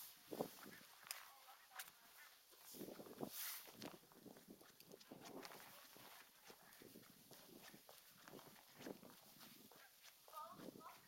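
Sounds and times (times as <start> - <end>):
footsteps on brick paving: 0.0 - 11.0.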